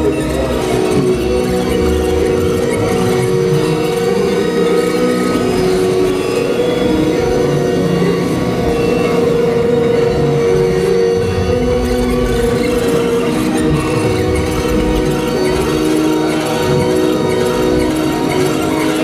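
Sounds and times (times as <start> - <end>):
held electronic drone tones: 0.0 - 19.0.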